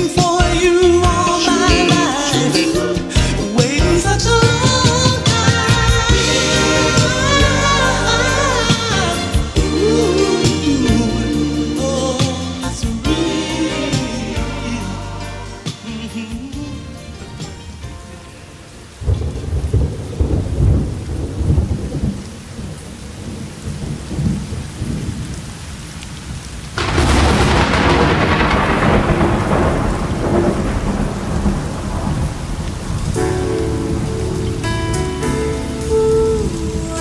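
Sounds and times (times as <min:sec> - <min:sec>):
music with sustained tones: 0:00.0 - 0:19.8, 0:33.1 - 0:37.0
rain: 0:00.0 - 0:37.0
rolling thunder: 0:18.9 - 0:37.0
loud thunderclap: 0:19.0 - 0:25.4, 0:26.8 - 0:34.6.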